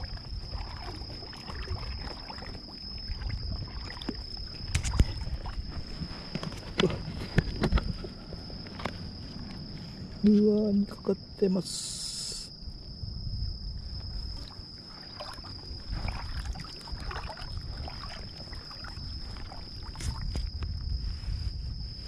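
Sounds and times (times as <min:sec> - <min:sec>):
water sloshing and splashing: 0:00.0 - 0:11.1, 0:13.7 - 0:21.8
high insect trill: 0:00.0 - 0:22.0.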